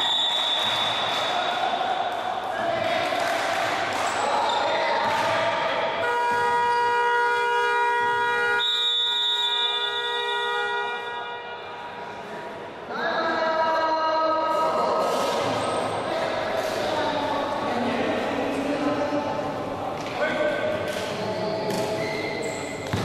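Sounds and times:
horn-like buzzer: 6.0s - 11.5s
basketball bouncing on gym floor: 22.8s - 23.0s.

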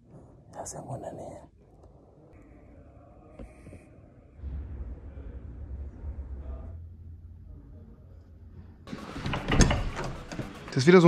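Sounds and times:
door clattering open: 8.9s - 10.8s.

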